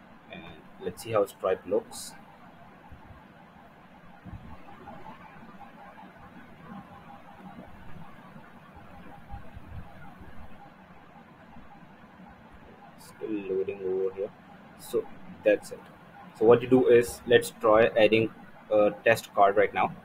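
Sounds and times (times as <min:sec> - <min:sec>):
faint background noise: 0:00.0 - 0:20.0.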